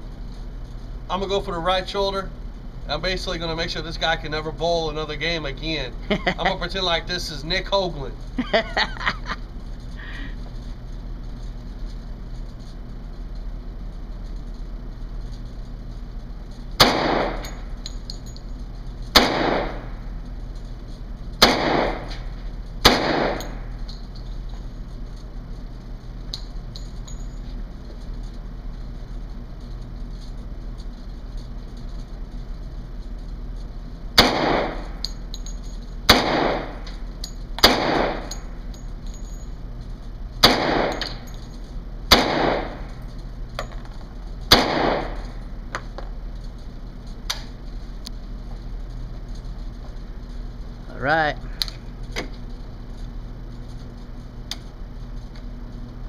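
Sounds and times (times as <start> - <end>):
handgun shots with echo: 16.8 - 17.6, 19.1 - 19.9, 21.4 - 22.2, 22.8 - 23.6, 34.2 - 34.9, 36.1 - 36.8, 37.6 - 38.4, 40.4 - 41.2, 42.1 - 42.8, 44.5 - 45.2.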